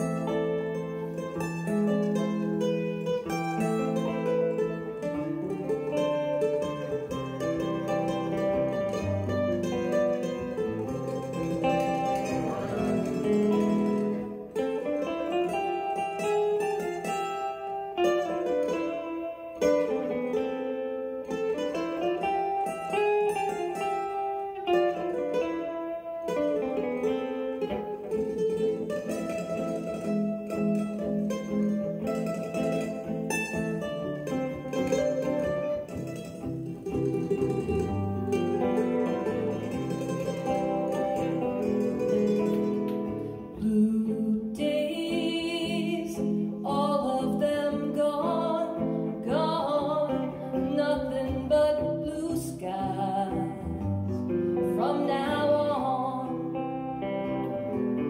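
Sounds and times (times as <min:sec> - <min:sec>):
electric guitar: 0:00.0 - 0:58.0
mandolin: 0:00.0 - 0:58.0.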